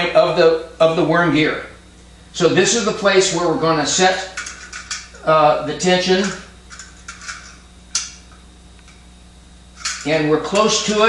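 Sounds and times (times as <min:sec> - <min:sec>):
low electrical hum: 0:00.0 - 0:11.0
light metal handling noises: 0:04.3 - 0:05.2, 0:06.2 - 0:09.0, 0:09.8 - 0:10.8.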